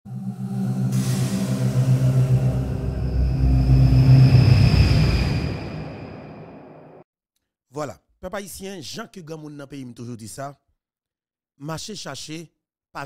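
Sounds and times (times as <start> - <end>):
deep rumble: 0.1 - 7.0
logo sting music: 0.1 - 7.0.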